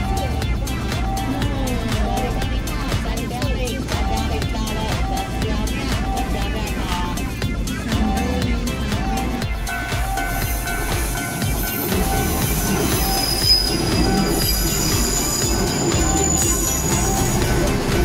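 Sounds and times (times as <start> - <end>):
wheels rumbling on rail: 0.0 - 18.0
high wheel squeal: 9.2 - 18.0.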